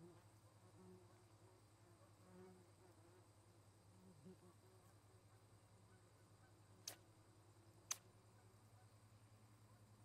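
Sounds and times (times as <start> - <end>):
sharp clicks: 6.8 - 7.0, 7.9 - 8.1.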